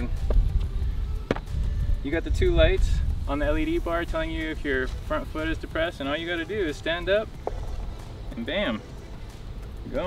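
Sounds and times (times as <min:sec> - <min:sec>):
wind rumble on microphone: 0:00.0 - 0:05.8.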